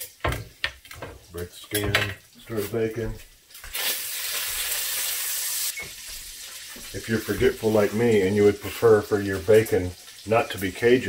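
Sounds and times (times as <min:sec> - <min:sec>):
bacon sizzling: 0:00.0 - 0:11.0.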